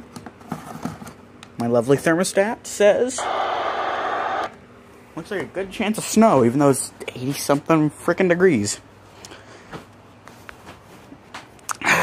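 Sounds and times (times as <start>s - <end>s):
radio static hiss: 3.1s - 4.6s.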